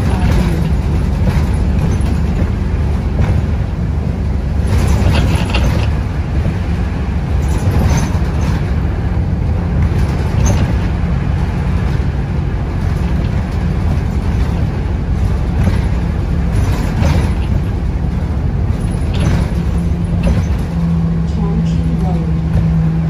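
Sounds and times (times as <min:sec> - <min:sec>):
vehicle engine and road rumble: 0:00.0 - 0:23.0.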